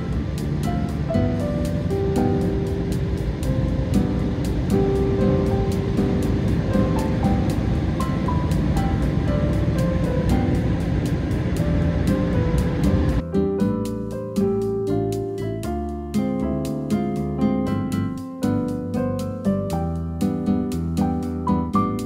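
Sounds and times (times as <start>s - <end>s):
car wash air dryer rushing: 0.0s - 13.2s
background music with steady beat: 0.0s - 22.0s.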